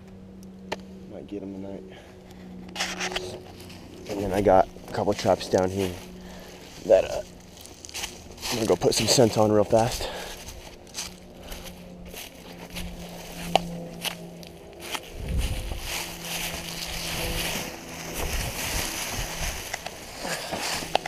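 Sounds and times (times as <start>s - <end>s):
footsteps crunching through dry leaves: 2.4s - 21.0s.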